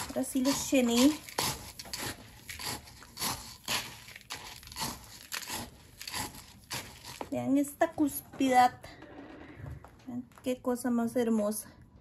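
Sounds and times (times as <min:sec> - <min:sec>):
plastic scoop scraping gritty soil: 0:00.0 - 0:07.6.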